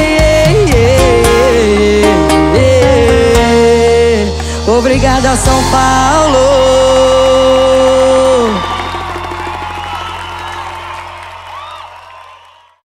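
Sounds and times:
live band held chord: 0:00.0 - 0:12.4
audience cheering and whooping: 0:06.1 - 0:12.8.

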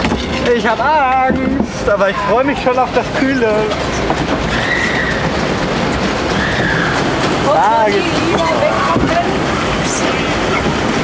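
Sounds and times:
ride rattling rumble: 0:00.0 - 0:11.0.

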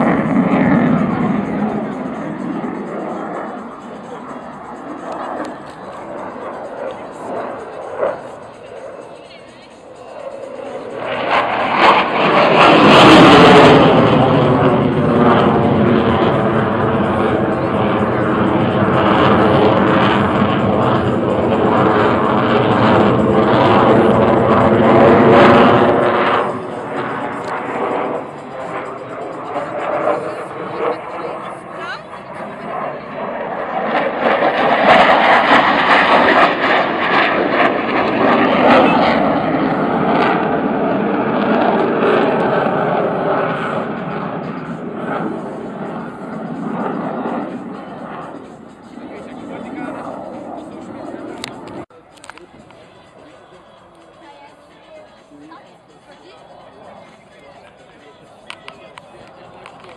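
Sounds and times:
jet fighter flying overhead: 0:00.0 - 0:59.9.

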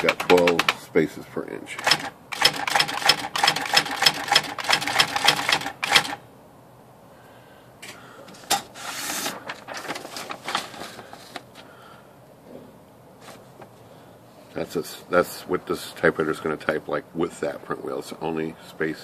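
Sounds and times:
electronic typewriter printing: 0:00.0 - 0:00.8, 0:01.8 - 0:06.2.

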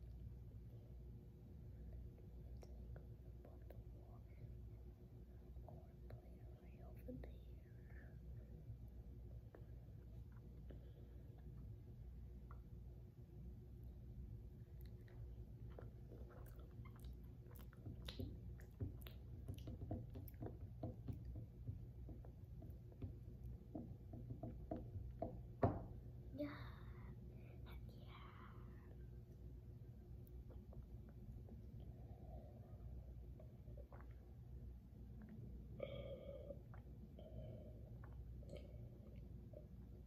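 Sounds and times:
low steady hum: 0:00.0 - 0:40.0
faint whispering voice: 0:02.6 - 0:04.7, 0:05.4 - 0:08.6, 0:26.3 - 0:29.1
child chewing food: 0:14.6 - 0:23.6.

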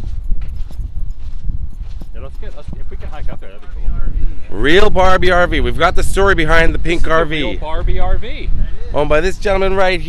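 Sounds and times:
footsteps on sandy dirt: 0:00.0 - 0:04.5
wind rumbling on microphone: 0:00.0 - 0:10.0.

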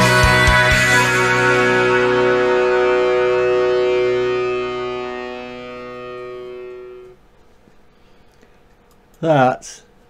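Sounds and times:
electric guitar chord ringing: 0:00.0 - 0:07.2.

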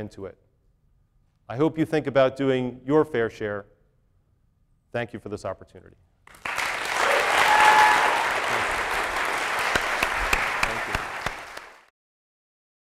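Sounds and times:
audience applauding: 0:06.3 - 0:11.9.

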